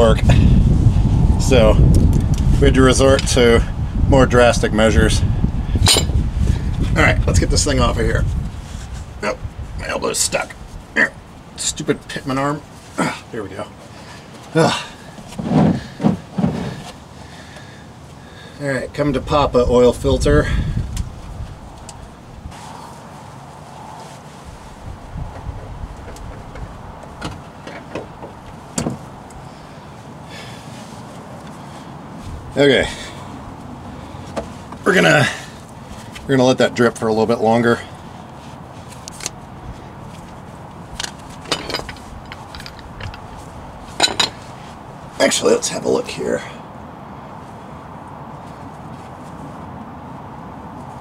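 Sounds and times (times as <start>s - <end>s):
tools scraping and clicking: 5.8s - 6.2s, 41.0s - 44.6s.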